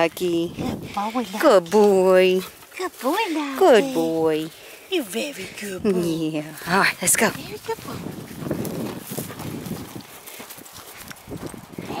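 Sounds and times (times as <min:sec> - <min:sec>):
footsteps crunching dry grass: 0:00.1 - 0:12.0.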